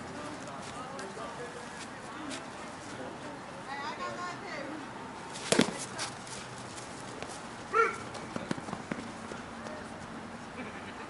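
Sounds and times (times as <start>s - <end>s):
player shouting: 7.7s - 8.0s.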